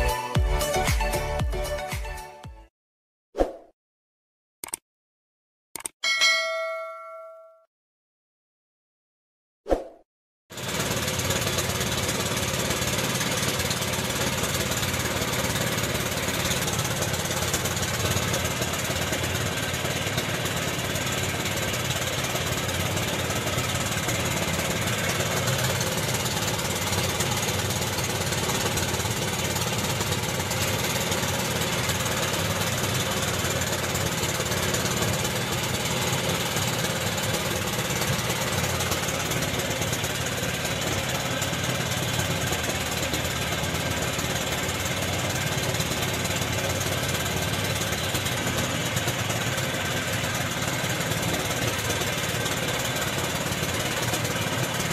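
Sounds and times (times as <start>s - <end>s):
boat engine running steadily: 10.5s - 54.9s.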